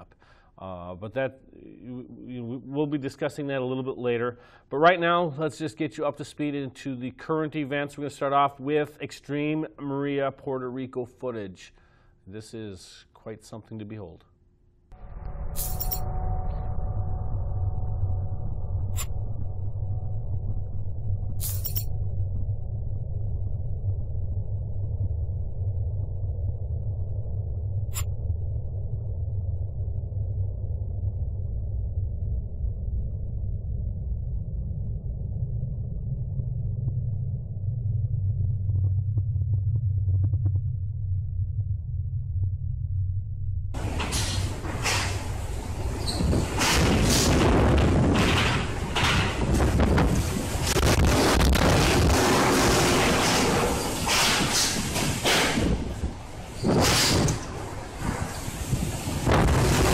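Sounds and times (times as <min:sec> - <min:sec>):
low rumble: 0:14.9 - 0:59.9
faint held tones: 0:15.0 - 0:27.1
storm wind and rain hiss: 0:43.8 - 0:59.9.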